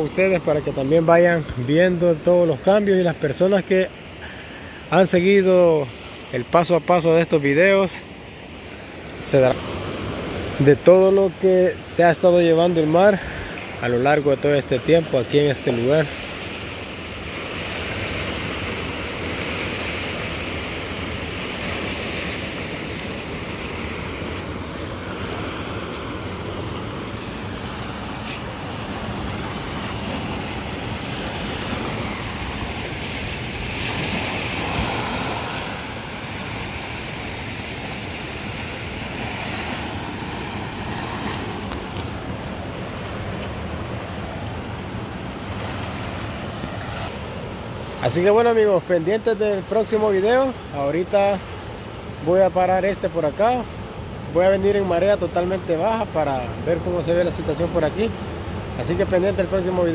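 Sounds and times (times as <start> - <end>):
ocean surf breaking on beach: 0.0 - 59.9.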